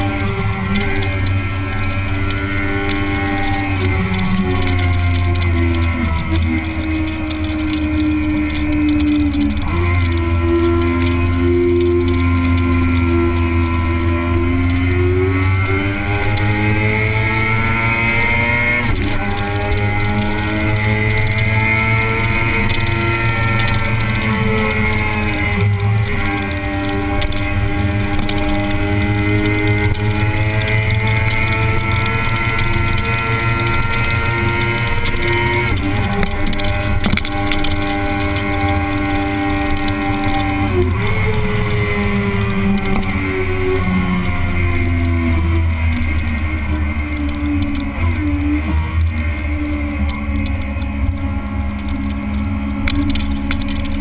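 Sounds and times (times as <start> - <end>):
motorcycle engine accelerating: 0.0 - 54.0.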